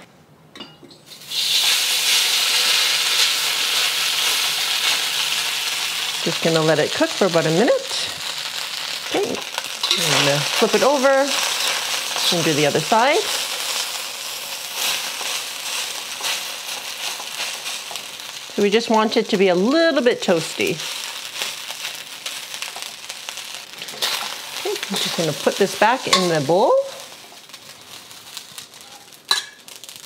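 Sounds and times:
noodles sizzling in hot oil: 0:01.1 - 0:30.0.

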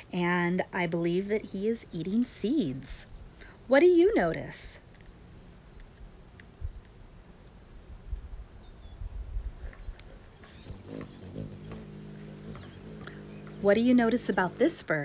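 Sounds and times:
wind rumble on microphone: 0:07.8 - 0:09.9
hummingbird wings humming: 0:10.6 - 0:15.0.

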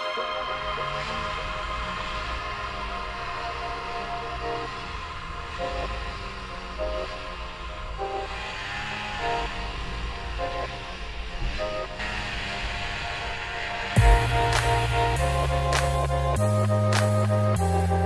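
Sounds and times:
snowmobile engine rumble and whine: 0:00.0 - 0:18.0.

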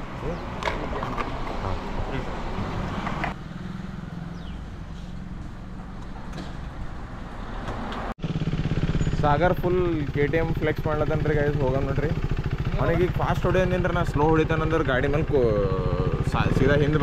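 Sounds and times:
voices: 0:00.2 - 0:03.1, 0:09.2 - 0:17.0
motorcycle engine idling: 0:08.2 - 0:17.0
man talking: 0:09.2 - 0:17.0.

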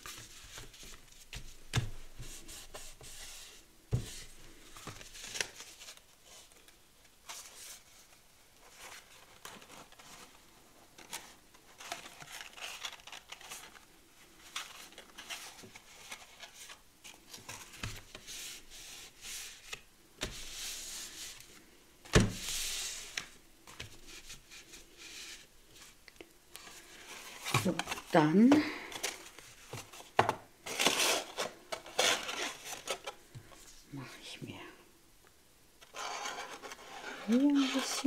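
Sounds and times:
paper rustling: 0:00.0 - 0:26.0, 0:26.6 - 0:33.8.

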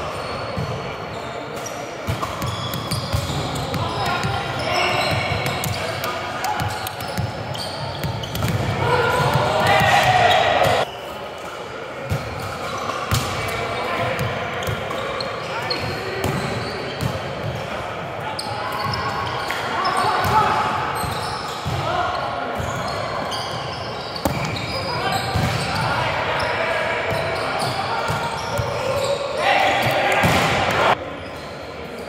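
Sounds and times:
players shouting: 0:08.6 - 0:10.9, 0:24.8 - 0:31.0.

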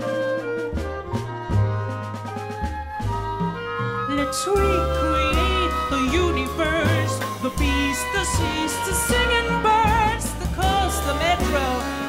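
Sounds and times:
clarinet: 0:00.0 - 0:12.0
drums: 0:00.0 - 0:12.0
flute: 0:00.0 - 0:12.0
upright bass: 0:00.0 - 0:12.0.

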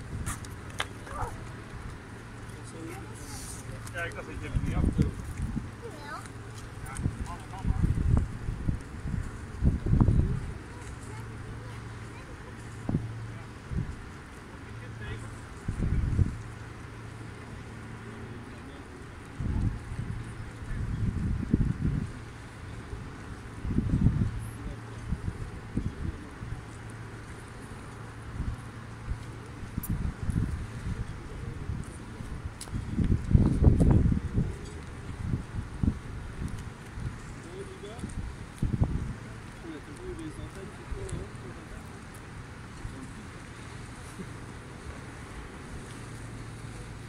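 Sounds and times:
wind buffeting microphone: 0:02.9 - 0:14.1, 0:15.6 - 0:16.6, 0:19.3 - 0:47.0.

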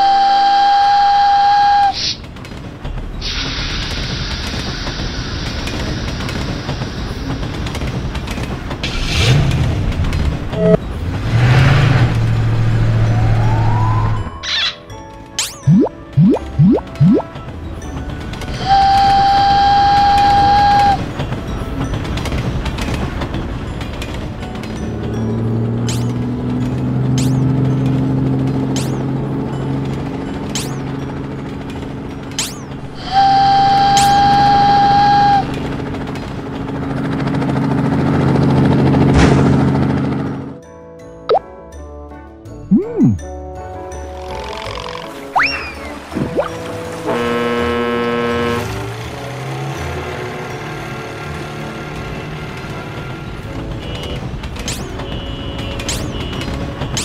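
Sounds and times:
long steady whistle tone: 0:00.0 - 0:02.0, 0:18.5 - 0:21.1, 0:32.9 - 0:35.6
children's background music: 0:12.9 - 0:19.2, 0:40.6 - 0:47.0
springy boing glides: 0:42.7 - 0:43.3.

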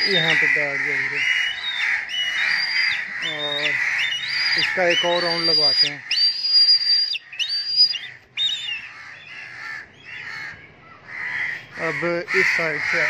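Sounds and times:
crows cawing: 0:00.0 - 0:13.0
kite whistling calls: 0:04.3 - 0:08.8.

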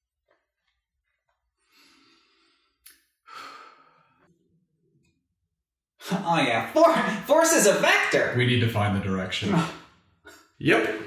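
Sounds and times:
man breathing out: 0:01.6 - 0:04.3.

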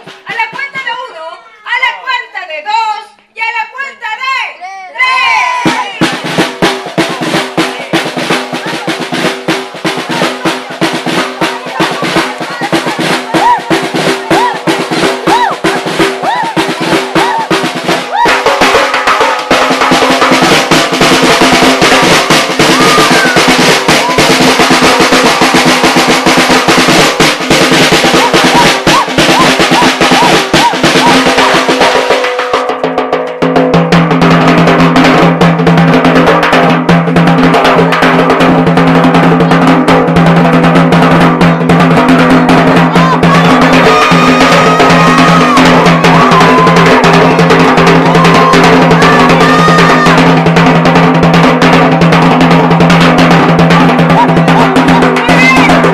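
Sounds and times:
music: 0:00.0 - 0:01.2, 0:05.6 - 0:55.9
drums playing fast rolls: 0:00.0 - 0:02.8, 0:05.0 - 0:55.9.

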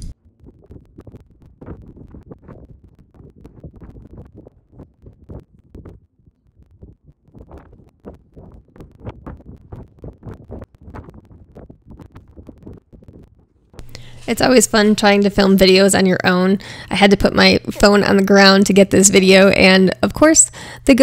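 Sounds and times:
wind rumbling on microphone: 0:00.0 - 0:13.8.

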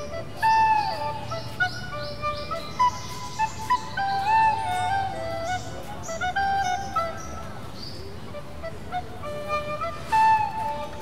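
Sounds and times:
slow flute melody: 0:00.0 - 0:11.0.

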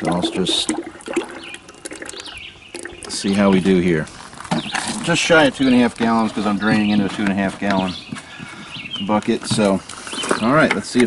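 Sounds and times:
oil glugging and splashing: 0:00.0 - 0:11.0.

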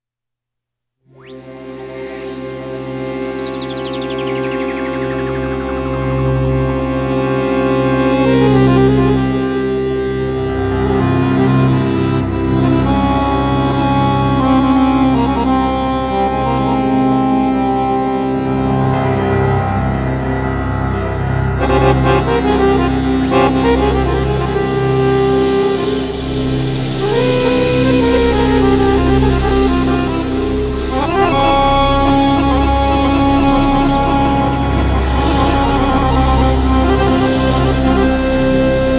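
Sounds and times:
ambient accordion and synthesizer music: 0:01.1 - 0:38.9.

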